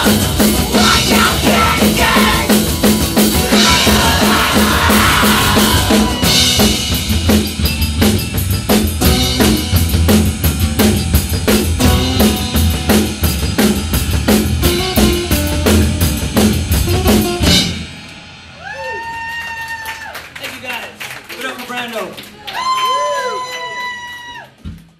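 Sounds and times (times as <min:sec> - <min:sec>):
live rock band playing loud: 0:00.0 - 0:18.6.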